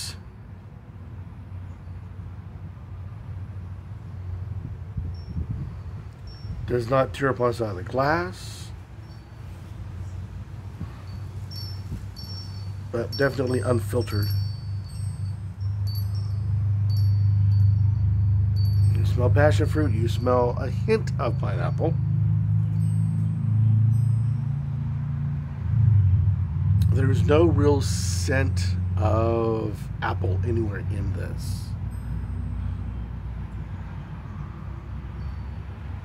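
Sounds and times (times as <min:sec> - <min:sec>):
faint high ringing tones: 0:01.5 - 0:02.4, 0:05.0 - 0:25.2, 0:31.6 - 0:36.0.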